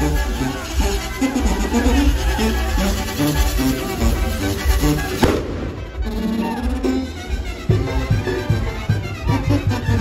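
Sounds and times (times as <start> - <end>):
fireworks going off: 0.0 - 6.1
festive band music: 0.0 - 10.0
sharp firecracker bang: 5.2 - 5.8.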